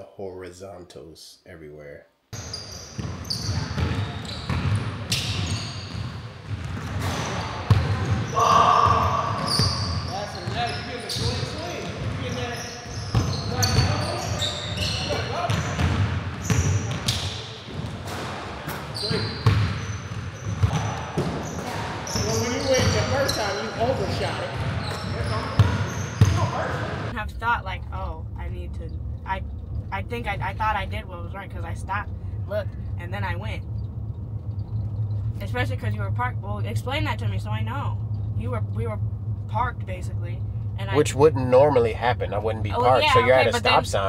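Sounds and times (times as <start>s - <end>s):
shoe squeaks on court: 2.4s - 27.1s.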